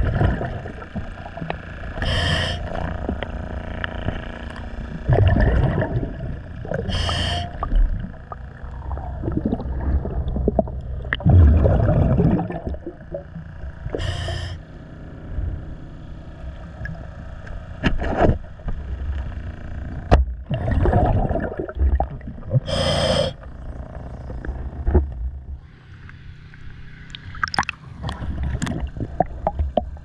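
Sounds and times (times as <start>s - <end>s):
gurgling exhaled bubbles: 0.0s - 3.3s, 4.8s - 14.4s, 20.4s - 23.5s, 27.1s - 30.0s
regulator hissing inhales: 2.0s - 2.8s, 6.8s - 7.6s, 13.9s - 14.6s, 22.6s - 23.4s.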